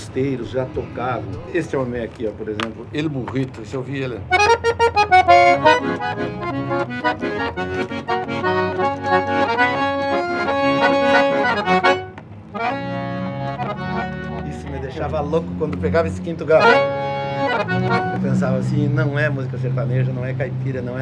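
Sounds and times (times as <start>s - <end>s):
accordion melody: 3.6s - 21.0s.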